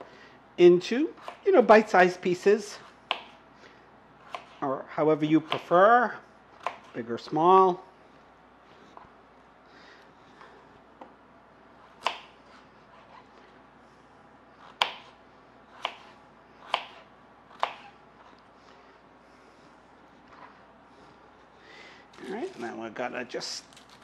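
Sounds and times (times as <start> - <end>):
knife chopping potato on board: 3.0 - 3.4, 4.2 - 4.6, 5.4 - 5.8, 6.6 - 7.0, 11.8 - 13.1, 14.6 - 17.9
faint handling sounds: 18.1 - 24.0.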